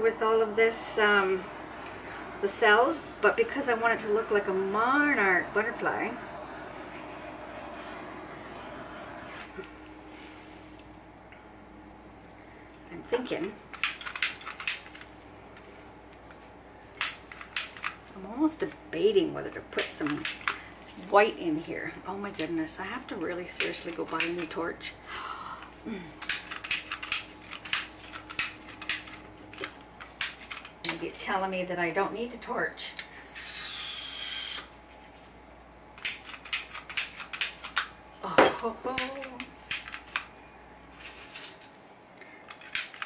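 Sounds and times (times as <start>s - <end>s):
gas hiss: 0.0s - 9.6s, 33.0s - 34.7s
kitchen torch igniter clicking: 13.7s - 15.1s, 17.0s - 18.0s, 19.8s - 20.6s, 23.6s - 24.6s, 26.2s - 29.3s, 30.0s - 31.0s, 36.0s - 37.9s, 38.9s - 40.3s, 42.5s - 43.0s.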